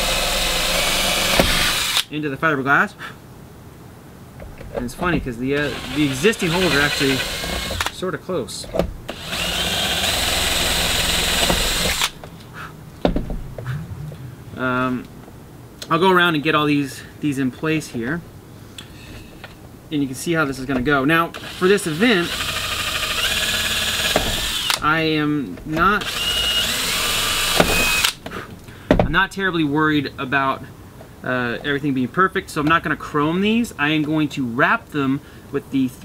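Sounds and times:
cordless drill drilling: 0.0 - 2.1, 5.6 - 8.0, 9.1 - 12.2, 21.4 - 24.8, 26.0 - 28.2.

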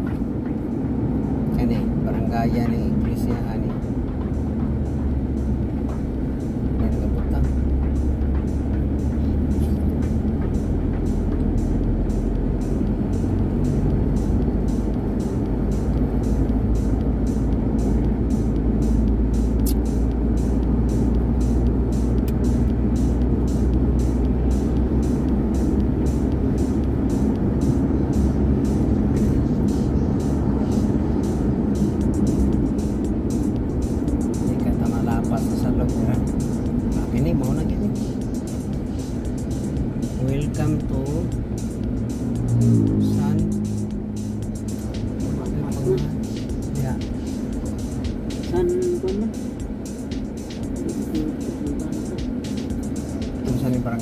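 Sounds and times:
car engine and road noise: 0.0 - 54.0
music playing: 0.0 - 54.0.

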